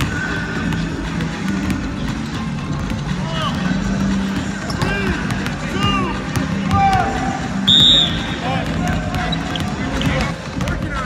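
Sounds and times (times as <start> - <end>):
basketballs bouncing on hardwood: 0.0 - 11.0
sneakers squeaking on floor: 0.0 - 11.0.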